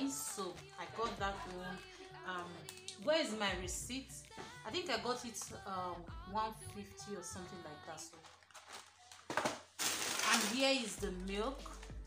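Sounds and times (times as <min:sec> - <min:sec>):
packaging rustling: 0:08.0 - 0:11.0.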